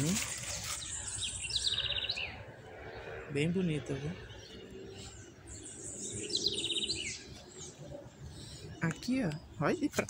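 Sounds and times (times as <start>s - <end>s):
small songbird singing: 0.0s - 10.0s.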